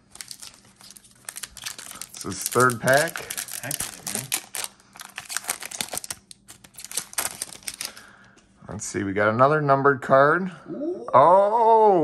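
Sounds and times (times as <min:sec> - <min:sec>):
foil wrapper crinkling: 0:00.0 - 0:08.2.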